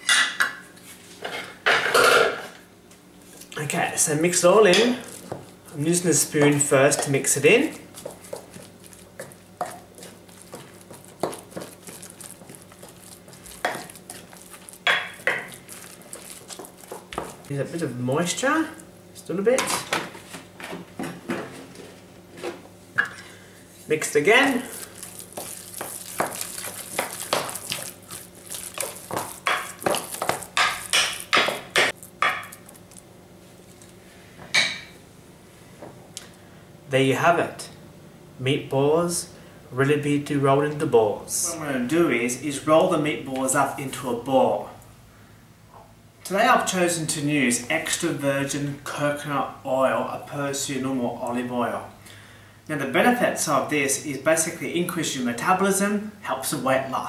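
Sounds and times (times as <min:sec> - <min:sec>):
spoon mashing wet mince: 0:04.0 - 0:18.4, 0:24.0 - 0:33.1.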